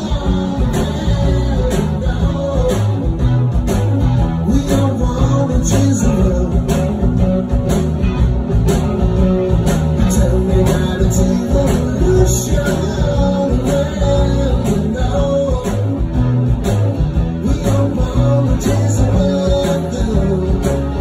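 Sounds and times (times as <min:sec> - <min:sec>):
person singing: 0:00.0 - 0:03.3, 0:04.4 - 0:07.1, 0:10.0 - 0:16.2, 0:17.3 - 0:21.0
drum kit beat: 0:00.0 - 0:21.0
electric guitars: 0:00.0 - 0:21.0
live rock band playing: 0:00.0 - 0:21.0.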